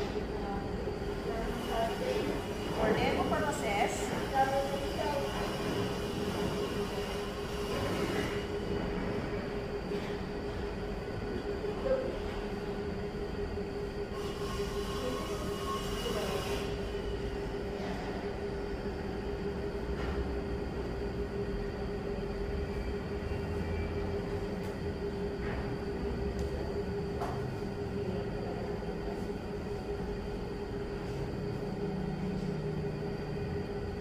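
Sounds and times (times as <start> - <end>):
mechanical hum: 0.0 - 34.0.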